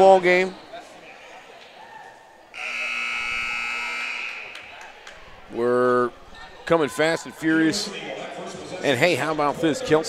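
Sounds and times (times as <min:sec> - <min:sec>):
gym background noise: 0:00.0 - 0:10.0
scoreboard buzzer: 0:02.6 - 0:04.7.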